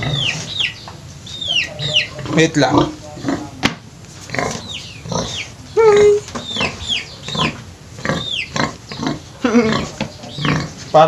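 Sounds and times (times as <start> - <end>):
pig grunting: 0.0 - 0.6, 1.4 - 11.0
bird chirping: 0.0 - 3.6, 4.3 - 11.0.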